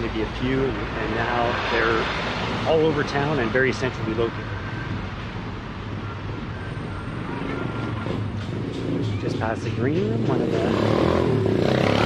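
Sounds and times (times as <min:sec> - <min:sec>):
road noise: 0:00.0 - 0:12.0.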